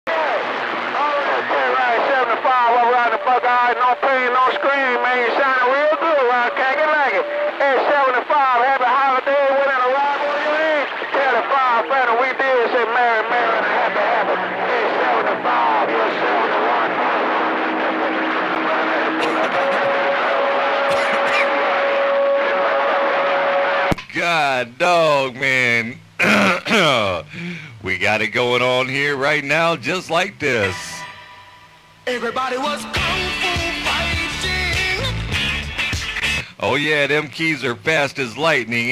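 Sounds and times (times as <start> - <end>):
unintelligible radio voices: 0.1 - 23.4
radio static: 0.1 - 32.3.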